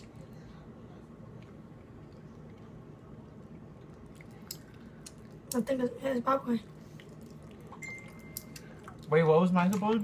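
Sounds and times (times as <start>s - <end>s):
low room hum: 0.0s - 10.0s
faint chewing: 1.2s - 5.7s, 6.6s - 10.0s.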